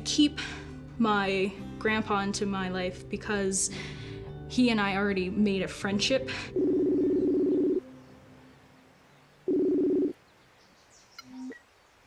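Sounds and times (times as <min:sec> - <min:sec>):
buzzy video call ringing tone: 0:06.6 - 0:07.8.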